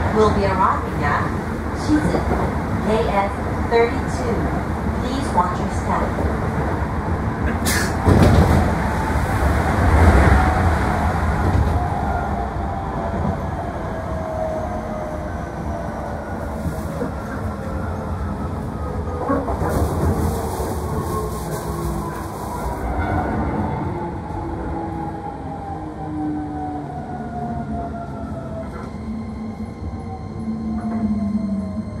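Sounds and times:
train running rumble: 0.0 - 12.5.

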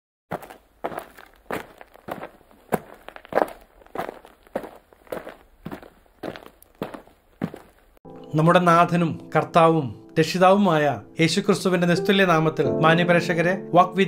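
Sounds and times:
footsteps walking: 0.3 - 8.0.

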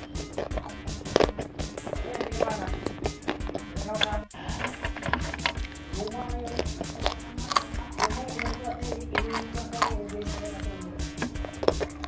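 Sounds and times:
crunching and chewing snacks: 0.0 - 12.0.

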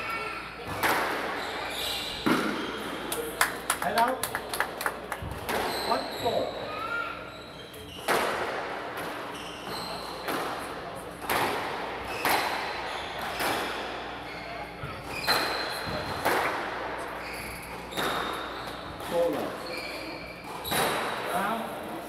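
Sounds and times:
squash ball hitting rackets and walls: 0.6 - 3.2, 5.2 - 6.1, 7.8 - 19.8, 20.4 - 21.5
shoes squeaking on wooden floor: 9.3 - 10.3, 17.2 - 21.0.

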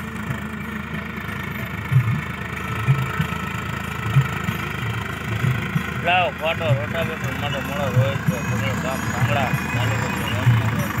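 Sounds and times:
tractor diesel engine under load: 0.0 - 11.0.

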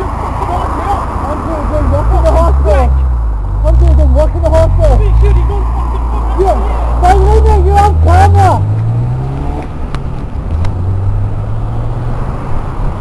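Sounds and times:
car engine accelerating: 0.1 - 13.0
person shouting: 6.4 - 8.6.

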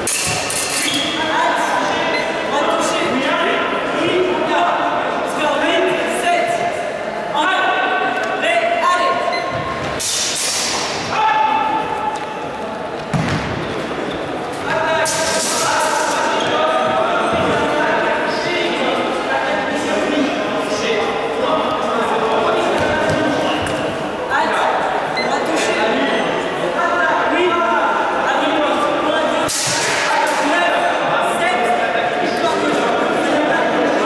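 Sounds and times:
people talking in echoing hall: 0.0 - 34.0.

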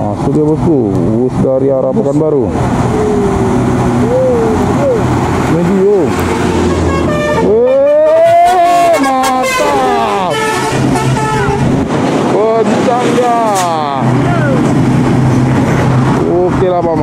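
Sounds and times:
bus and truck engines running: 0.0 - 17.0
bus horn: 6.2 - 11.8.

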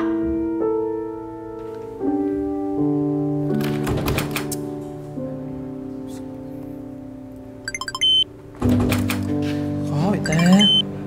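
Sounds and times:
background music: 0.0 - 11.0
keypad key-press beeps: 7.7 - 8.2, 10.3 - 10.8
long high rejection beep: 7.7 - 8.3, 10.3 - 10.8.

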